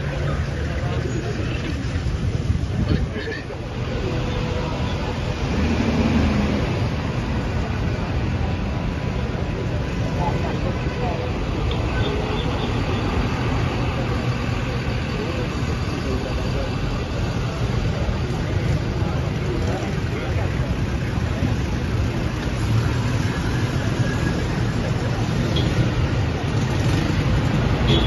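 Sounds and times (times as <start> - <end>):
people talking: 0.0 - 28.0.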